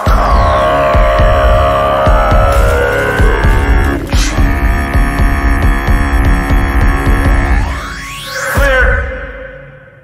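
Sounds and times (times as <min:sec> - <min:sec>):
heavy bass beat: 0:00.0 - 0:07.8.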